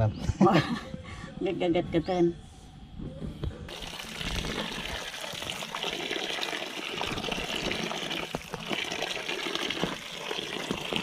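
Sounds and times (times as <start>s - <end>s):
tap water pouring into basin: 3.7s - 11.0s.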